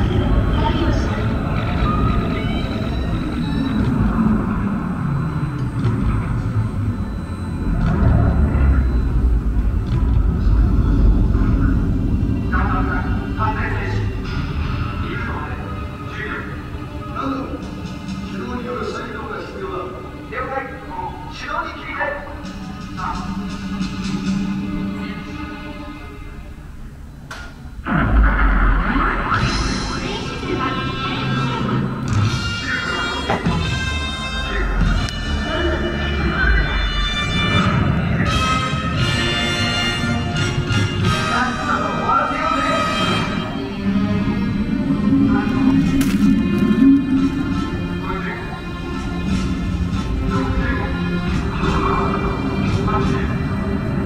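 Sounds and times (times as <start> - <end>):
deep rumble over loudspeakers: 0.0 - 54.0
voices: 0.0 - 54.0
deep boom: 5.8 - 15.1, 27.8 - 31.0.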